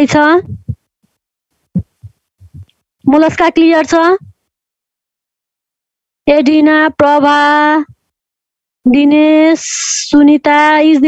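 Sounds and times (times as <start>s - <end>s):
short low thumps: 0.4s - 0.9s, 1.8s - 2.7s.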